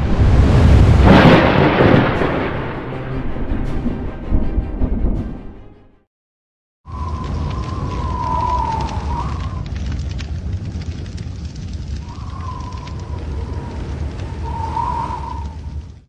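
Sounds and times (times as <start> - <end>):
low rumble: 0.0 - 5.7, 6.9 - 16.0.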